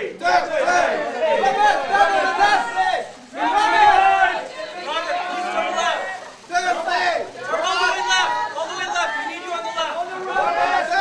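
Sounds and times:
photographers calling out: 0.0s - 11.0s.

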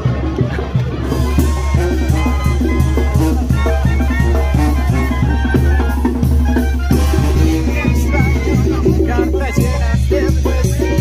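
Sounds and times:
brass band playing: 0.0s - 11.0s
steady drum beat: 0.0s - 11.0s.

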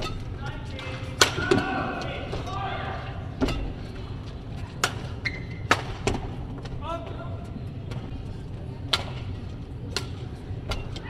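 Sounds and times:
racket striking shuttlecock: 0.0s - 1.7s, 4.8s - 6.3s, 9.9s - 11.0s.

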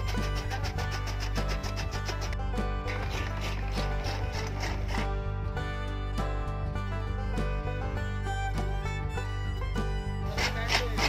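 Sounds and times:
gear teeth clattering and ratcheting: 0.0s - 5.1s.

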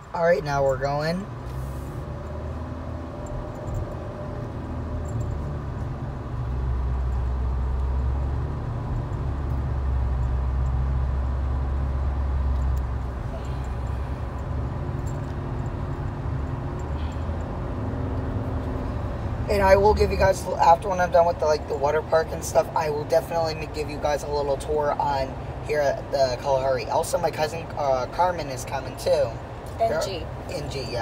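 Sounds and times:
car engine and tyre rumble: 0.0s - 31.0s.

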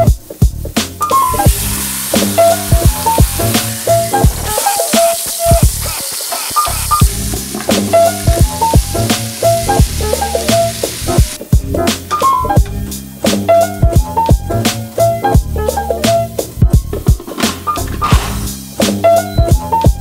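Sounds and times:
background music with drums: 0.0s - 20.0s
chicken sizzling in hot oil: 1.0s - 11.4s.

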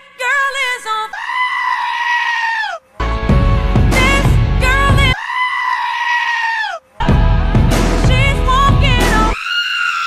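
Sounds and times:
goat screaming: 1.1s - 2.8s, 5.2s - 6.9s, 9.3s - 10.0s.

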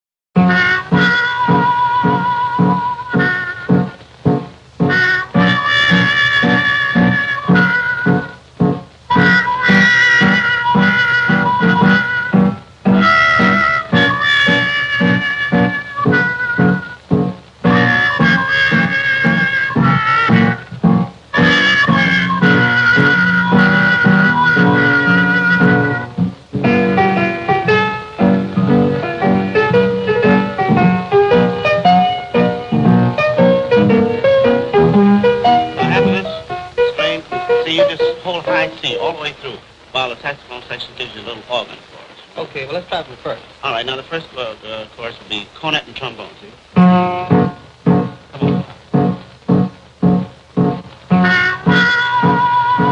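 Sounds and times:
jazz orchestra playing: 0.4s - 40.2s, 46.8s - 52.9s
trumpet melody: 0.4s - 41.7s, 46.0s - 52.9s
piano chords: 0.4s - 52.9s.

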